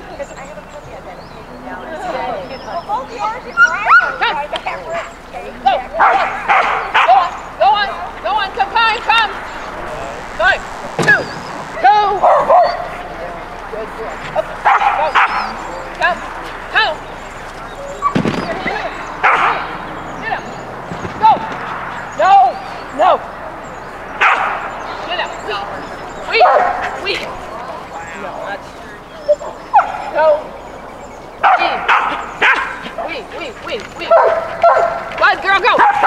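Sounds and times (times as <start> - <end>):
dog yipping and barking: 3.5 - 5.2, 6.0 - 7.5, 12.2 - 13.1, 14.6 - 15.6, 18.0 - 19.7, 24.2 - 24.7, 29.7 - 30.2, 31.4 - 32.9, 34.1 - 35.1, 35.7 - 36.0.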